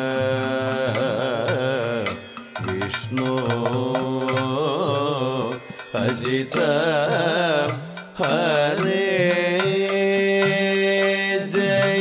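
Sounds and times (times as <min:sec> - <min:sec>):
person singing ornamented phrases: 0:00.0 - 0:12.0
steady held drone: 0:00.0 - 0:12.0.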